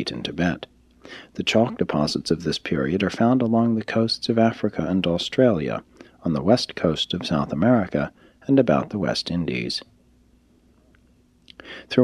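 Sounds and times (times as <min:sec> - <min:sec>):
man narrating: 0:00.0 - 0:09.8, 0:11.5 - 0:12.0
faint steady hum: 0:00.0 - 0:12.0
man breathing in: 0:01.0 - 0:01.4, 0:05.9 - 0:06.2, 0:08.1 - 0:08.4, 0:11.6 - 0:11.9.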